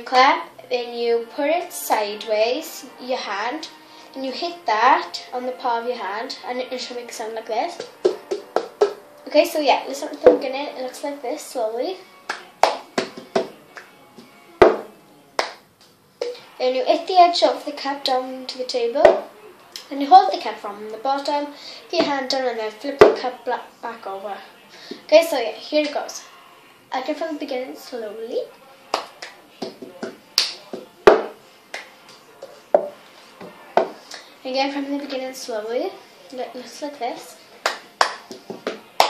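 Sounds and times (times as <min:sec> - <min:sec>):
hand claps: 0:07.8 - 0:09.0, 0:12.2 - 0:16.4, 0:28.9 - 0:32.2, 0:37.6 - 0:39.0
cup knocking on table: 0:14.6 - 0:14.9, 0:30.8 - 0:31.4, 0:32.7 - 0:34.0.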